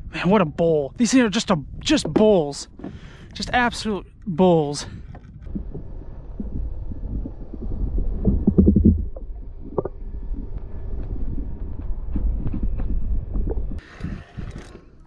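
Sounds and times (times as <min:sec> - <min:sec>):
underwater rumble of water: 0:04.8 - 0:15.0
thumps: 0:05.1 - 0:10.0.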